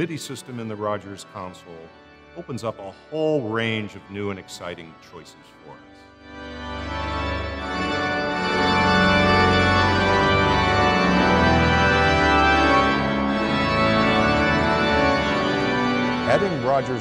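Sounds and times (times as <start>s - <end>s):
church organ chords: 0.0s - 17.0s.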